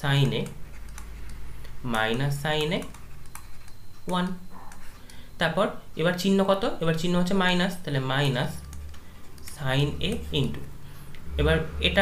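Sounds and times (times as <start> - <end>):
man speaking: 9.4 - 10.7, 11.3 - 12.0.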